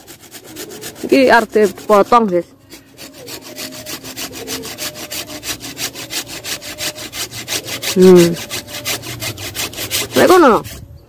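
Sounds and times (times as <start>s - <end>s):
fast rasping strokes: 0.0s - 11.0s.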